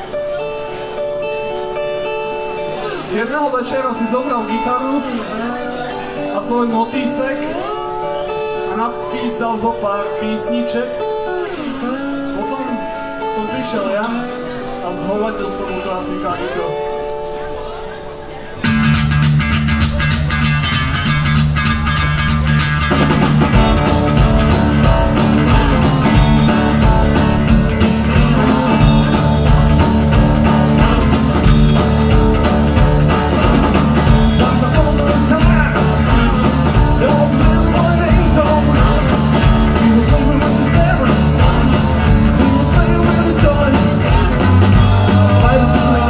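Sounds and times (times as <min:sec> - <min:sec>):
rock band playing: 0:00.0 - 0:46.0.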